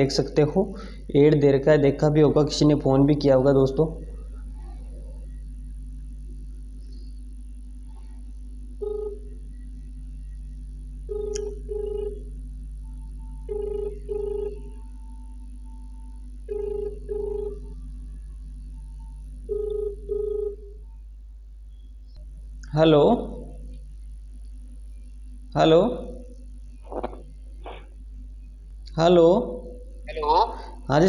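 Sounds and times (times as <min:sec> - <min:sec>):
telephone ringback tone: 0:08.8 - 0:09.3, 0:11.1 - 0:12.2, 0:13.4 - 0:14.7, 0:16.5 - 0:17.7, 0:19.5 - 0:20.7.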